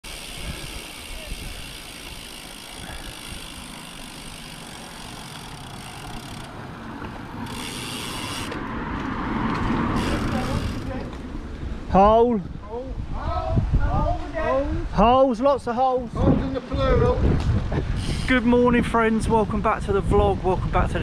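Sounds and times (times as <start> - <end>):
bicycle tyre road noise: 0.0 - 14.6, 16.1 - 21.0
wind rumbling on microphone: 0.1 - 7.6, 8.6 - 21.0
car approaching: 2.7 - 12.0.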